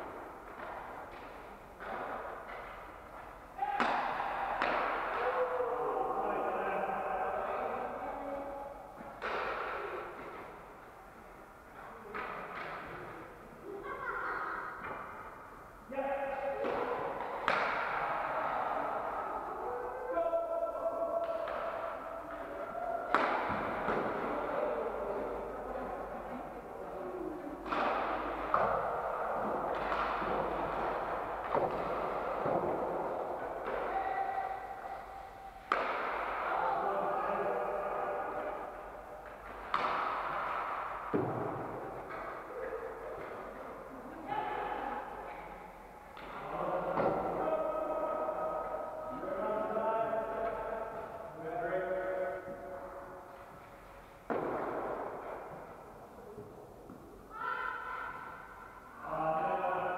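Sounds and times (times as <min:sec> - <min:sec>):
hockey pucks knocking with echo: 0:00.0 - 0:59.3.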